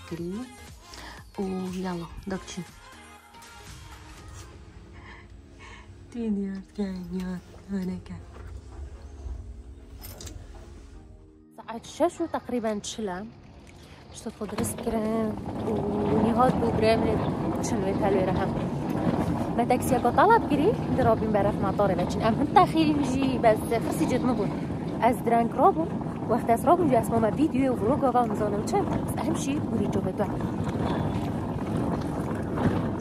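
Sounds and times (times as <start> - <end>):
woman talking: 0.0 - 0.6, 1.2 - 2.7, 6.1 - 8.4, 11.5 - 13.4, 14.1 - 18.8, 19.5 - 30.9
rough noisy rumble: 3.9 - 33.0
wind buffeting microphone: 11.9 - 33.0.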